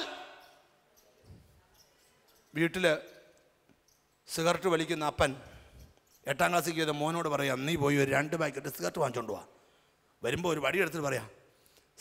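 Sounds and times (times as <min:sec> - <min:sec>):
man's amplified voice echoing: 0:00.0 - 0:00.6, 0:02.5 - 0:03.2, 0:04.2 - 0:09.6, 0:10.2 - 0:11.4.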